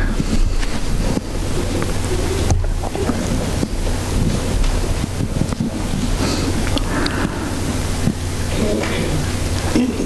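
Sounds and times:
rushing microphone noise: 0.0s - 9.6s
low electrical hum: 0.0s - 10.0s.

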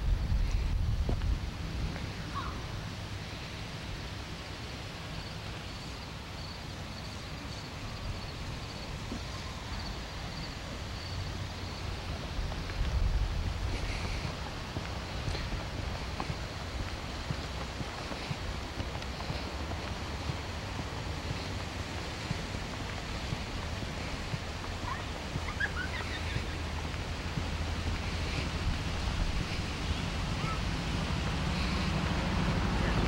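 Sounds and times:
wind rumble on microphone: 0.0s - 33.0s.

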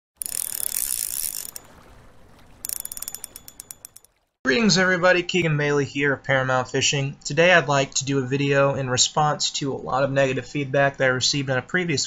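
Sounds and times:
rapid mechanical clicking: 0.2s - 1.6s, 2.6s - 4.1s.

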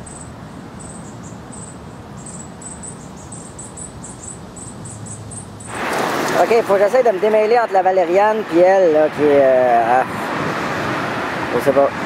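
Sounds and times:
rush of noise: 5.6s - 12.0s.

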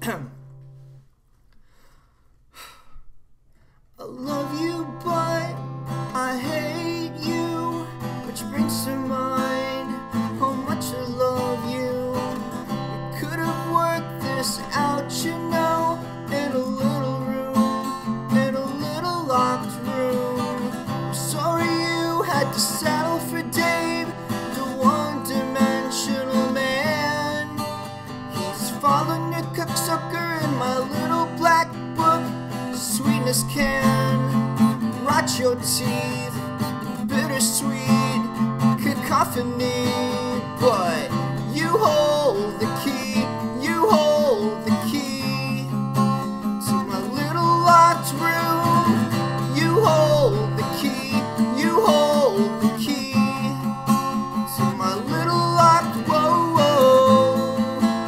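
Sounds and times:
acoustic guitar strumming chords: 4.0s - 58.0s.

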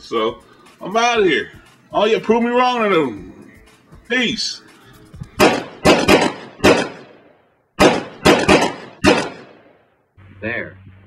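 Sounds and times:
sharp percussive hits: 5.4s - 9.7s.

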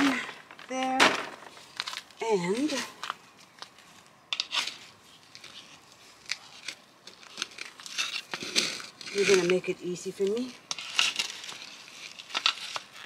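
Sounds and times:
crackling and rustling: 0.0s - 13.0s.

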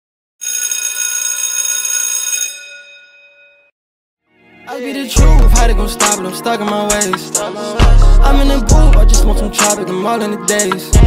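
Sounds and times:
bell-like electronic ringing: 0.4s - 3.7s.

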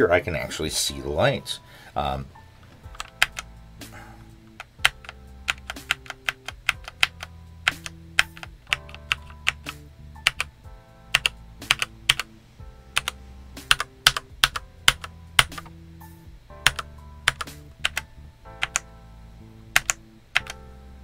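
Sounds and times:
soft background music: 0.0s - 21.0s
mechanical keyboard key clacks: 2.9s - 3.4s.

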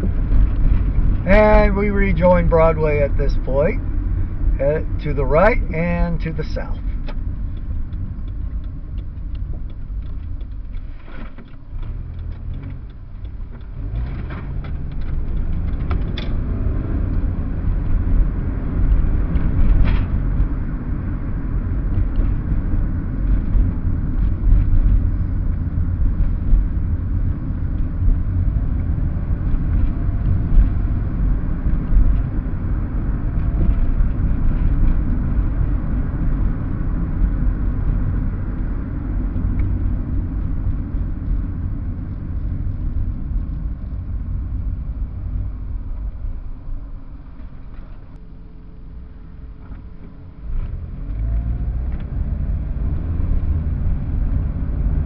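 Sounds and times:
car engine: 0.0s - 55.0s
tyre road noise: 0.0s - 55.0s.

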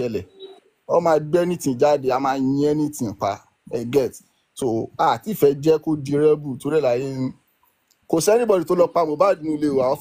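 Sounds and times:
person talking: 0.0s - 7.4s, 8.0s - 10.0s.

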